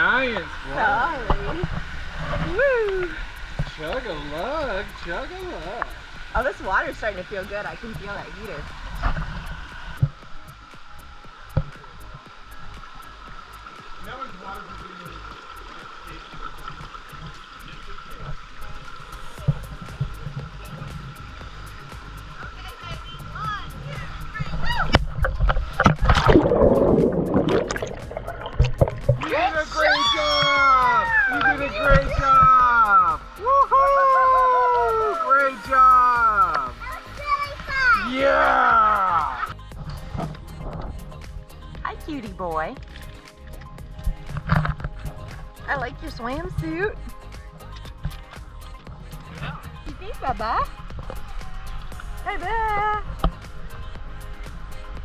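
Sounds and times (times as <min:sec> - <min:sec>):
background music with sung notes: 0:00.0 - 0:55.0
pool water splashing: 0:00.0 - 0:55.0.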